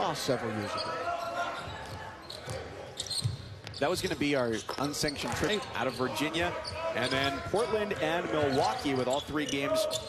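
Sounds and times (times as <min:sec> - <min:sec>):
indoor arena background: 0:00.0 - 0:10.0.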